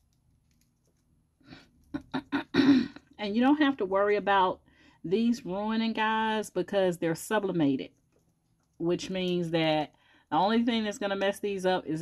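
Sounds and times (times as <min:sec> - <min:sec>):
woman clearing her throat: 0:02.0 - 0:03.1.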